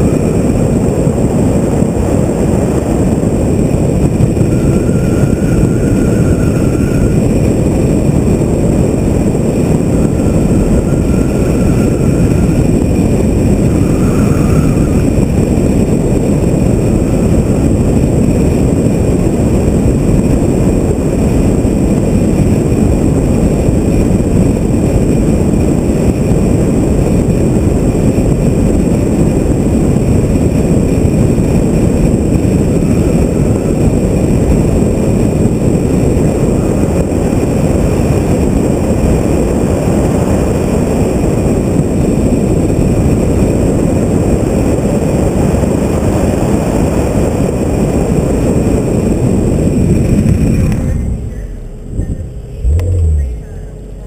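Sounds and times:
car engine: 0.0 - 54.0
loud wind: 0.0 - 54.0
road rumble: 0.0 - 54.0.

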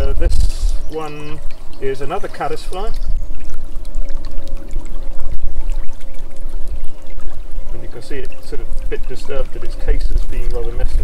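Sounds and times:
steady low rumble: 0.0 - 11.0
stream water gurgling: 0.0 - 11.0.

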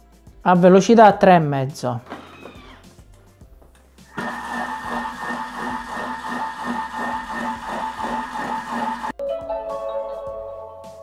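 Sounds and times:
food processor motor whine: 2.1 - 2.9, 4.1 - 9.2.

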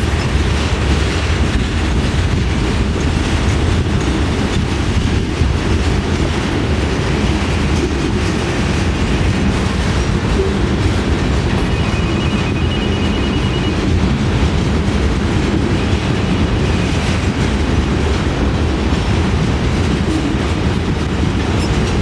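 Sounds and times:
freight train wheels on rails: 0.0 - 22.0.

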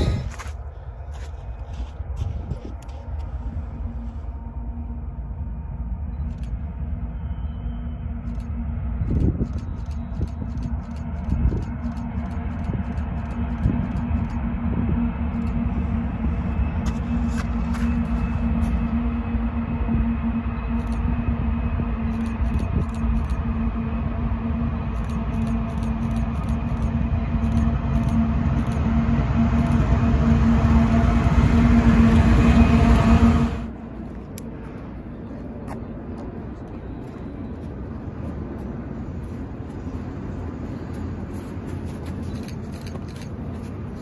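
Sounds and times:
diesel locomotive engine hum: 0.0 - 44.0
low rumble: 0.0 - 44.0.

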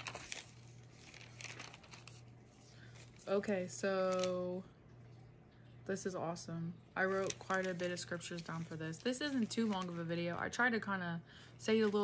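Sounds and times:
paper rustling and crinkling: 0.0 - 4.5, 7.0 - 10.4
low room hum: 0.0 - 12.0.

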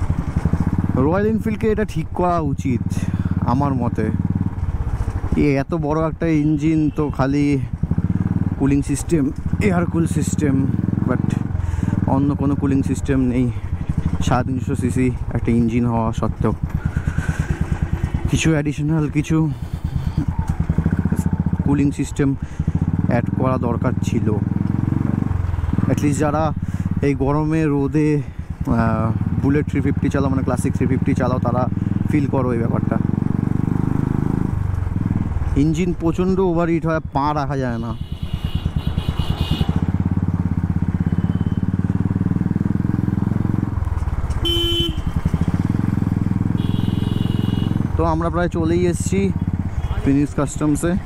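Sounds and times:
motorcycle engine running: 0.0 - 51.0
horn blast: 44.4 - 45.1, 46.5 - 47.9.

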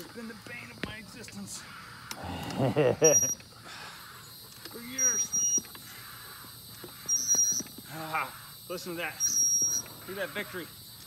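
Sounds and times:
floor jack pump squeak: 4.9 - 5.7, 6.9 - 7.7, 9.2 - 9.9.

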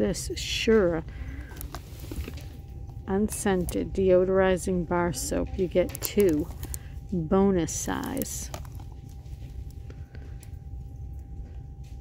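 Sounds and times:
low background rumble: 0.0 - 12.0
shrink-wrapped box rustling: 1.4 - 2.7, 5.9 - 6.9, 7.7 - 9.7.

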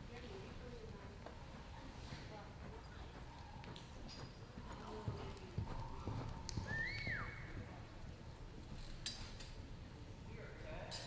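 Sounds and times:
horse hoofbeats on soft dirt: 0.0 - 8.8.

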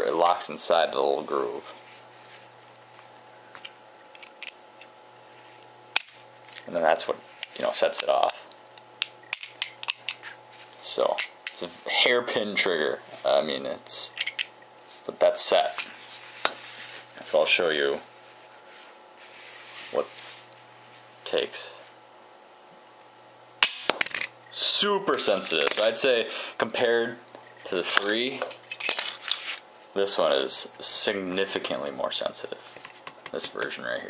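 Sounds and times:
steady low hum: 0.0 - 34.0
faint rubbing noise: 15.9 - 17.2, 18.2 - 21.0
loud sharp trap click: 23.6 - 24.3.

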